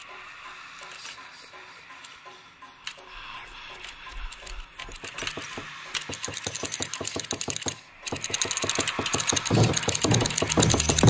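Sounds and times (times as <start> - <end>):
fast repeating rattling pulse: 4.9 - 11.0.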